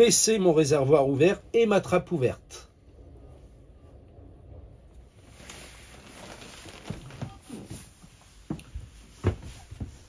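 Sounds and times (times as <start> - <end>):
soft knocks and rustles: 5.3 - 10.0.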